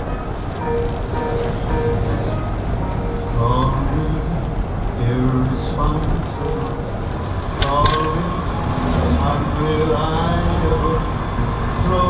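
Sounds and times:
car engine and road rumble: 0.0s - 12.0s
indistinct voices: 3.4s - 12.0s.

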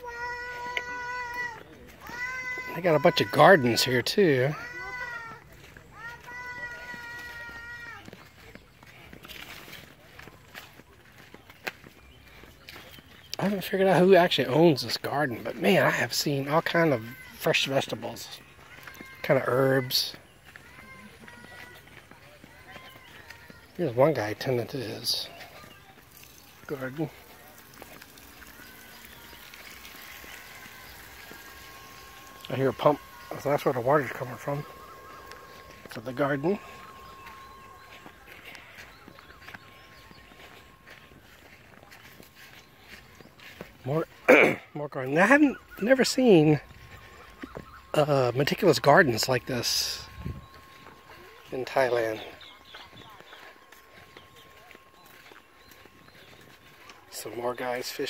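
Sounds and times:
water pump humming: 0.0s - 8.2s, 23.6s - 58.0s
distant voices: 0.0s - 58.0s
footsteps on dirt path: 0.0s - 58.0s
thin steady high tone: 14.0s - 44.5s, 45.1s - 58.0s.

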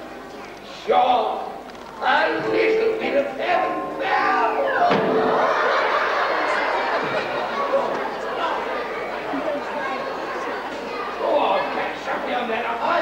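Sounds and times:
audience chattering: 0.0s - 13.0s
audience laughing: 4.7s - 10.7s.

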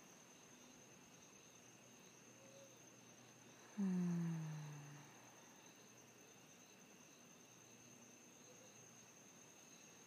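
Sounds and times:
insect chirring: 0.0s - 10.0s
woman's voiced exhale: 3.7s - 5.2s.

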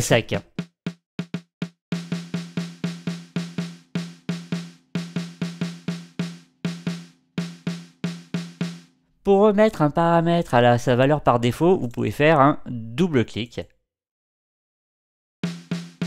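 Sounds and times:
snare drum strokes: 0.5s - 8.9s, 15.4s - 16.0s.

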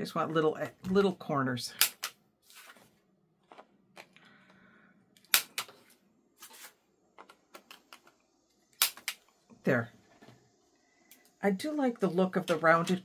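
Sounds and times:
card rustling: 2.4s - 4.1s, 5.7s - 7.5s.

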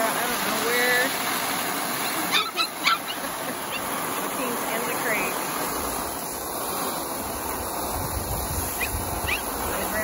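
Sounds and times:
puppy yipping: 2.0s - 3.9s, 8.8s - 9.5s.

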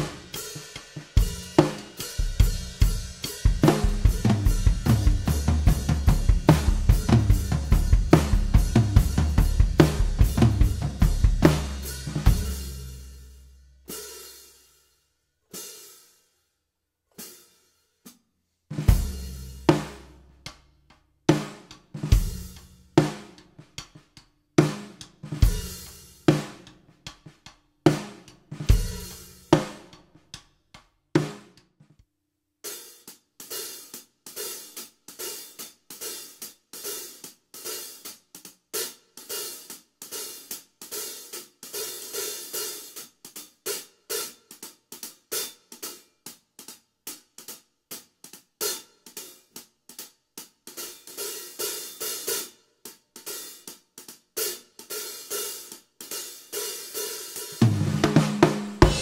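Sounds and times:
drumstick playing hi-hats rapidly: 0.0s - 13.3s, 21.3s - 24.0s, 24.6s - 30.0s, 32.7s - 59.0s
hi-hat strikes sizzling: 58.8s - 59.0s.

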